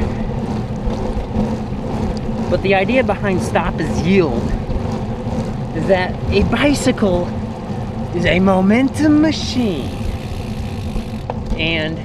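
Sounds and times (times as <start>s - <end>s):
tyres rolling on wet asphalt: 0.0s - 12.0s.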